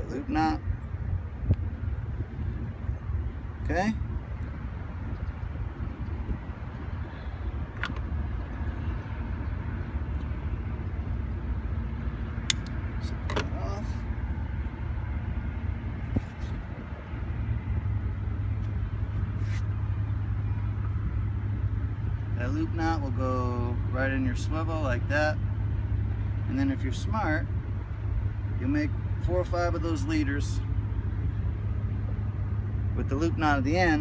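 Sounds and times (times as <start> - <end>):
low steady rumble: 0.0 - 34.0.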